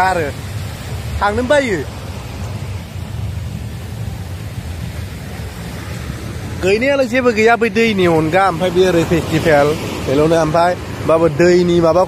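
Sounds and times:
surf on beach: 0.0 - 12.0
wind rumble: 0.0 - 12.0.

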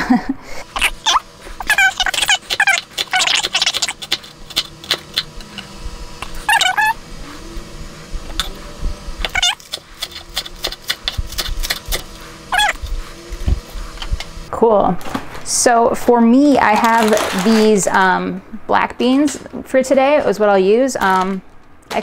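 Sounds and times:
high-pitched rising falling calls: 6.4 - 7.7, 12.5 - 12.8
knife chopping on wooden board: 9.2 - 12.2.

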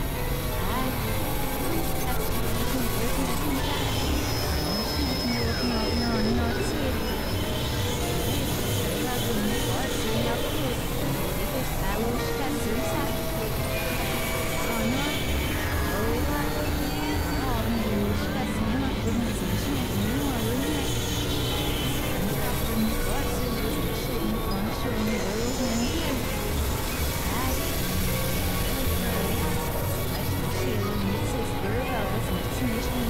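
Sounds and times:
synthesizer drones and noise: 0.0 - 33.0.

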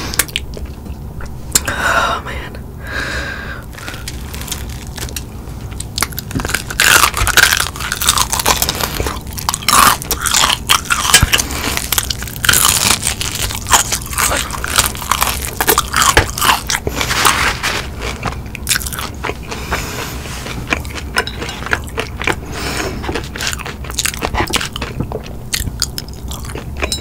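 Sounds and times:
chewing crispy fried chicken: 3.7 - 27.0
crunching of fried breading: 3.7 - 27.0.

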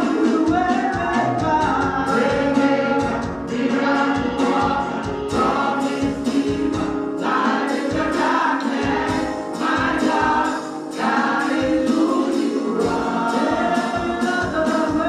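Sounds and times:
musical accompaniment: 0.0 - 15.0
women singing gospel: 1.8 - 15.0.

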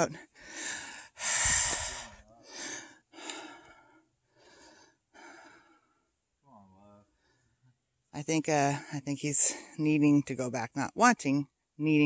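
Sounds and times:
person breathing hard: 0.2 - 6.0.

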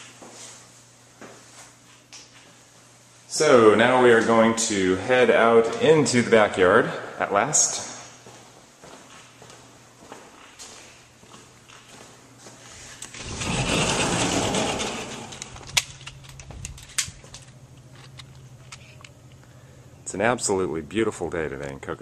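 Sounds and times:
steady low hum: 0.0 - 22.0
sliding glass door rolling open: 13.0 - 15.7.

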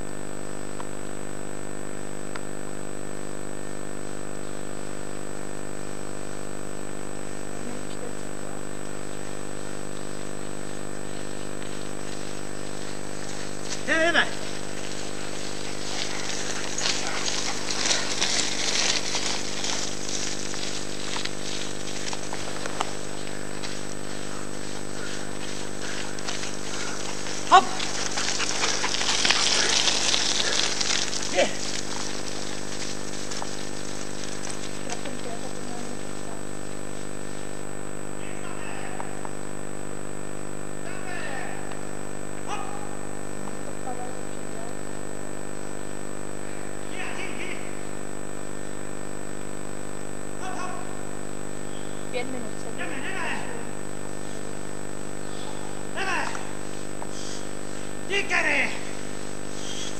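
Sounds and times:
camcorder hum and whine: 0.0 - 59.9
hissing rustle: 7.7 - 37.8, 54.1 - 58.2, 58.8 - 59.9
person shouting: 27.5 - 27.9, 42.5 - 43.0, 50.4 - 51.0, 52.8 - 53.7, 55.5 - 56.6, 58.1 - 58.9.

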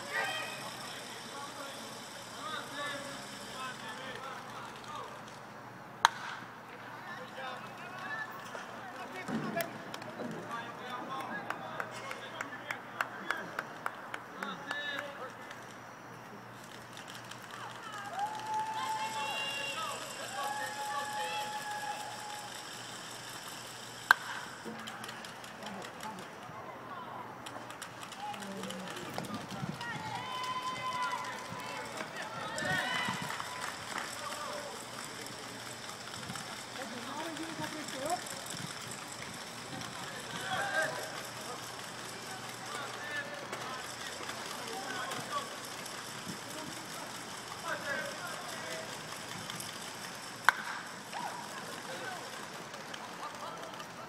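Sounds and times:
voices calling and talking: 0.0 - 54.0
sharp crack: 6.0 - 6.5, 50.4 - 50.9.

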